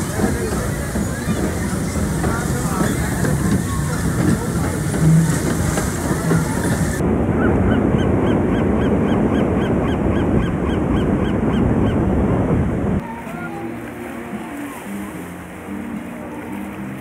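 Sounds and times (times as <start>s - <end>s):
crowd and ride noise: 0.0s - 17.0s
surf: 0.0s - 17.0s
wind: 0.0s - 17.0s.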